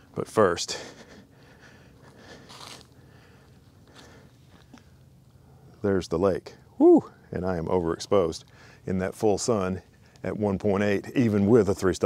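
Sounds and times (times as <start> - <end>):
footsteps crunching on leaves: 2.1 - 3.0.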